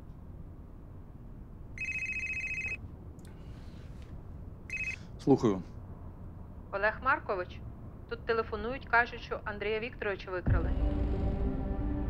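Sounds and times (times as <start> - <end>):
desk telephone ringing: 1.8 - 2.8, 4.7 - 5.0.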